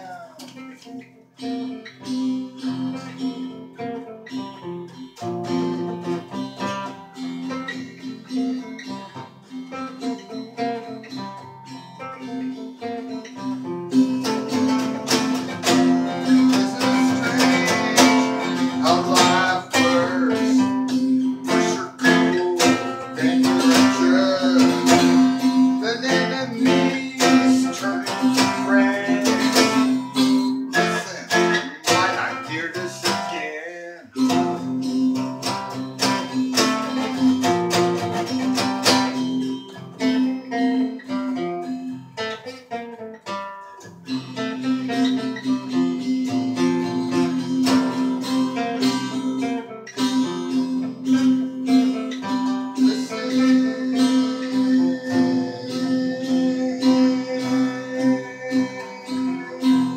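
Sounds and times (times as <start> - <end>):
two guitars jamming: 0.0 - 59.9.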